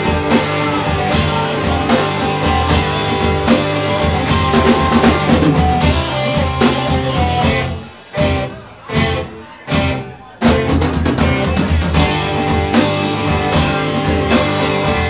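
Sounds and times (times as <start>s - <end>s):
drum kit beat: 0.0s - 15.0s
guitars: 0.0s - 15.0s.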